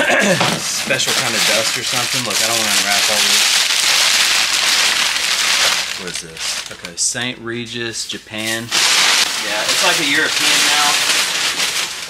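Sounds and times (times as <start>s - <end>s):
people talking: 0.0s - 3.4s, 6.0s - 8.7s, 9.4s - 11.0s
packing paper crinkling: 0.5s - 7.1s, 8.2s - 12.0s.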